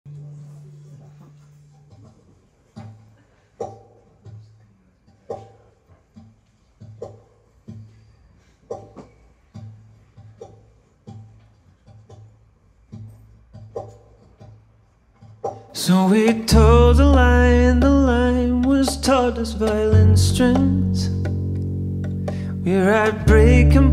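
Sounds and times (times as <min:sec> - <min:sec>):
picked guitar intro: 0:15.8 - 0:23.9.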